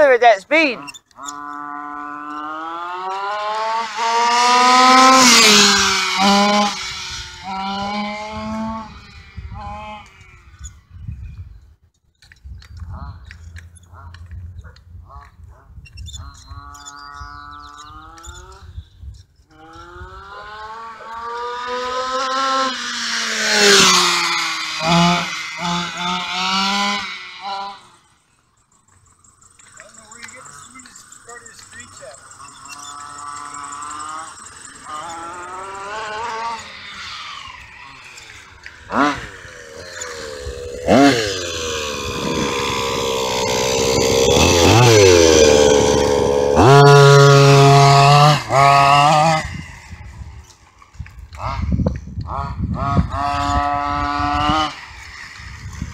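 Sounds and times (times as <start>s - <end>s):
two-stroke engine buzzing: 0.0s - 11.8s, 16.2s - 55.9s.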